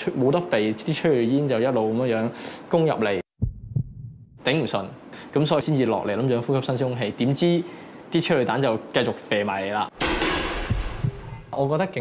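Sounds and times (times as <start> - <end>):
low dull thuds: 3.4 - 4.4.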